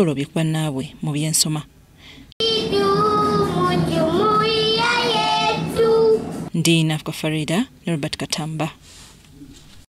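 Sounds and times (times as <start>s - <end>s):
girls singing into a microphone: 2.4s - 6.3s.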